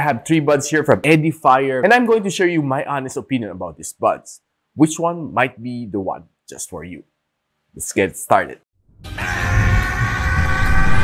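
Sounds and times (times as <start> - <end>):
heavy low rumble: 9.0 - 11.0
sustained high tones: 9.0 - 11.0
dense rushing noise: 9.2 - 11.0.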